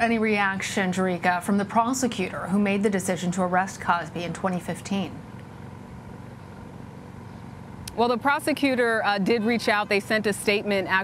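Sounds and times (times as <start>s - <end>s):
woman's voice: 0.0s - 5.2s, 7.9s - 11.0s
faint microphone hum: 0.0s - 11.0s.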